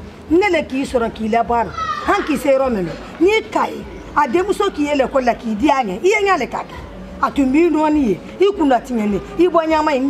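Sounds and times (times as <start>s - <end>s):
woman talking animatedly: 0.3s - 10.0s.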